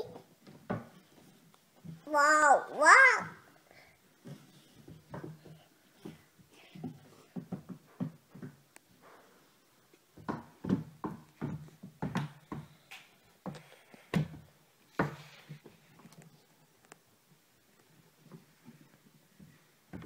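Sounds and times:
toddler vocal sounds: 0:02.0 - 0:03.5.

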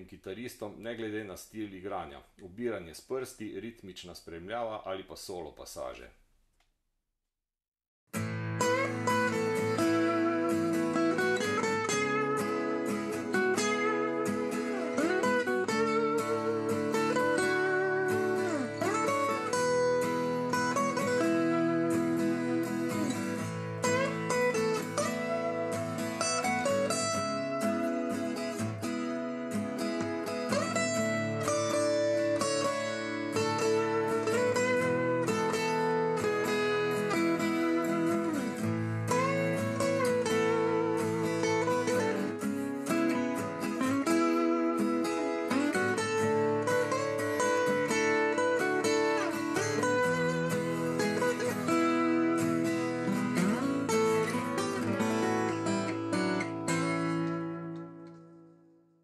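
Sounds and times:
fingerstyle acoustic guitar: 0:08.1 - 0:59.0.

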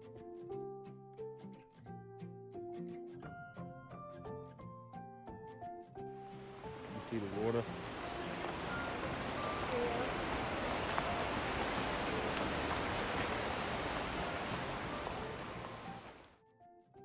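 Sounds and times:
soft background music: 0:00.0 - 0:17.0
creek water over rapids: 0:06.3 - 0:16.3.

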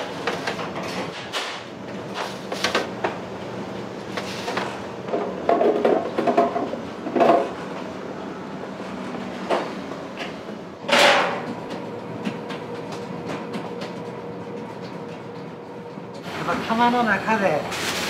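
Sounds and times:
steady machine hum: 0:00.0 - 0:18.0
metal baking trays clattering: 0:10.9 - 0:11.4.

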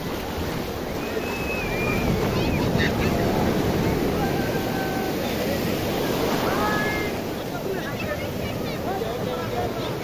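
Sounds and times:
wind buffeting microphone: 0:00.0 - 0:07.2
ocean surf breaking: 0:00.0 - 0:10.0.

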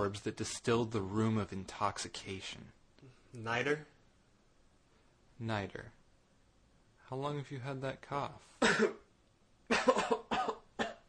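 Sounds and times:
man coughing: 0:08.6 - 0:09.1, 0:09.7 - 0:11.0.

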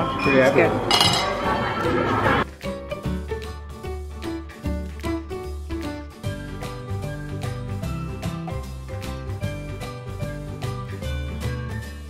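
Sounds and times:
tableware clinking: 0:00.2 - 0:02.3.

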